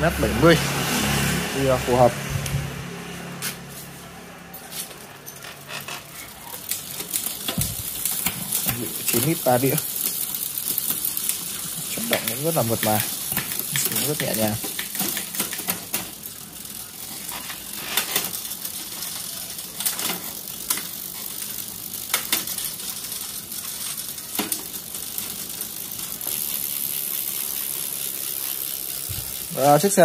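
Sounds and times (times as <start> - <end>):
bicycle chain ticking hiss: 4.7 - 30.0.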